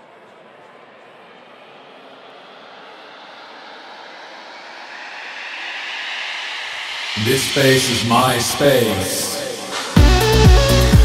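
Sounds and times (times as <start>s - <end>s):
white-noise riser hiss: 0.0s - 10.8s.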